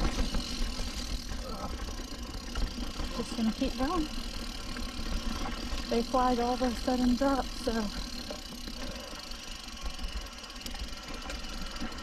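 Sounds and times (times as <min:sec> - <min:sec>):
mountain bike rattling on rough trail: 0:00.0 - 0:12.0.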